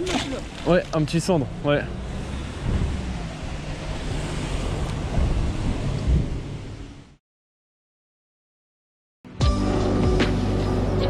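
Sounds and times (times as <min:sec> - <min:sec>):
wind buffeting microphone: 0:02.0 - 0:07.1.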